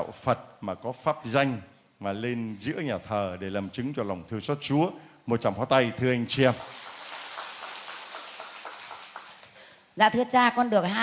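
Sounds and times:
crowd applauding: 6.4s - 9.7s.

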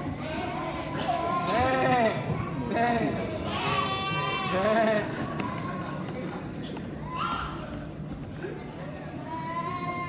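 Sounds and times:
children bleating like sheep: 3.4s - 4.9s.

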